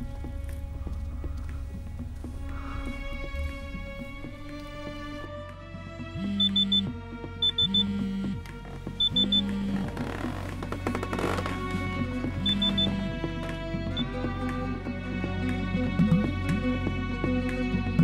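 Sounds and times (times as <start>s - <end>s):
low hum: 0.0s - 15.3s
soft film score music: 0.0s - 18.0s
alarm clock beeping: 6.2s - 8.4s, 9.0s - 9.7s, 12.4s - 13.0s.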